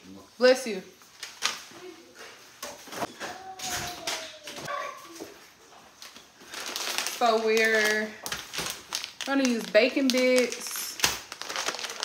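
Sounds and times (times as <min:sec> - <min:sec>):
food packets rustling: 0:03.0 - 0:12.0.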